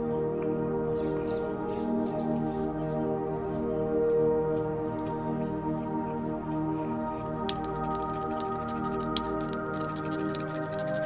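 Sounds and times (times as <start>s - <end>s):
background music with held tones: 0.0s - 11.0s
stone pestle tapping on stone: 7.5s - 11.0s.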